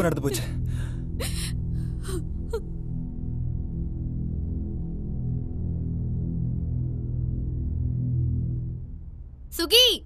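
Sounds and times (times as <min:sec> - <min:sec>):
low background music: 0:00.0 - 0:10.0
woman sobbing: 0:01.2 - 0:02.7.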